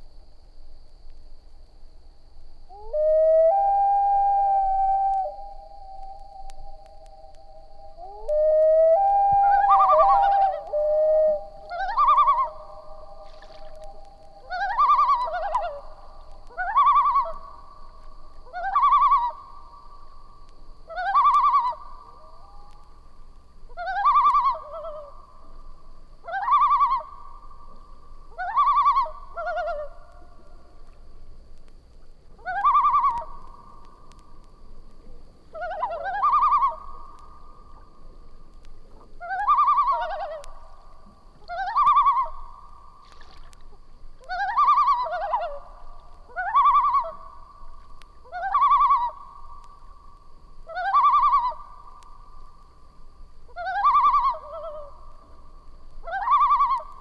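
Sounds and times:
loon calling: 0:02.7 - 0:17.6, 0:18.4 - 0:19.6, 0:20.8 - 0:22.9, 0:23.7 - 0:25.2, 0:26.2 - 0:27.3, 0:28.3 - 0:30.1, 0:32.4 - 0:33.8, 0:35.5 - 0:37.8, 0:39.2 - 0:40.7, 0:41.4 - 0:43.5, 0:44.2 - 0:47.4, 0:48.2 - 0:49.6, 0:50.7 - 0:52.1, 0:53.5 - 0:55.4, 0:56.0 - 0:57.0.

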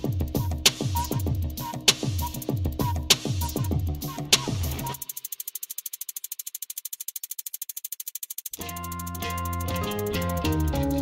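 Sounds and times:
music with bass and drums: 0:00.0 - 0:05.2, 0:08.6 - 0:11.0
rapid percussion rattle: 0:00.0 - 0:11.0.

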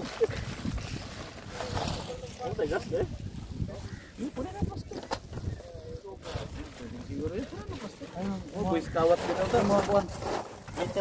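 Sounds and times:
plastic sack rustling: 0:00.0 - 0:04.1, 0:06.1 - 0:11.0
wind rumble on microphone: 0:00.0 - 0:07.7
people talking: 0:01.6 - 0:11.0.

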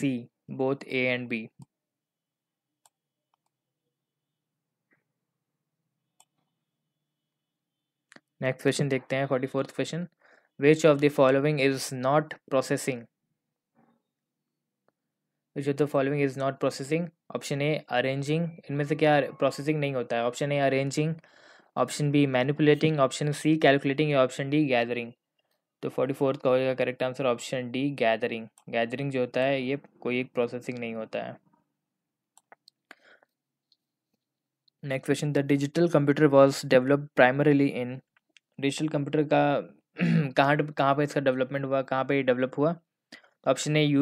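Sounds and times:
man speaking: 0:00.0 - 0:01.6, 0:08.4 - 0:13.1, 0:15.6 - 0:21.2, 0:21.8 - 0:25.2, 0:25.8 - 0:31.4, 0:34.8 - 0:38.0, 0:38.6 - 0:42.8, 0:43.4 - 0:44.0.

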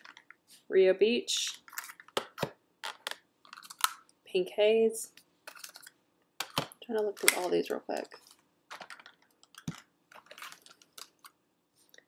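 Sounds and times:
plastic packs clicking and rustling: 0:01.7 - 0:04.0, 0:05.5 - 0:11.4.

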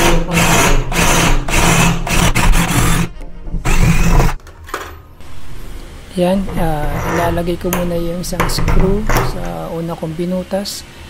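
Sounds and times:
cordless drill boring through plastic: 0:00.0 - 0:03.1, 0:03.7 - 0:04.4.

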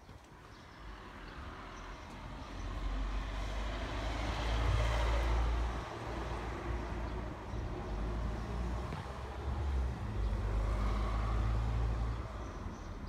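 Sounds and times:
vehicle passing: 0:00.8 - 0:12.8.

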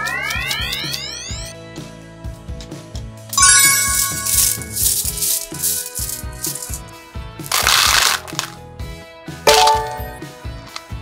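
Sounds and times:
background music: 0:00.0 - 0:11.0
candies pouring into plastic tubs: 0:03.9 - 0:06.8, 0:07.4 - 0:08.6.

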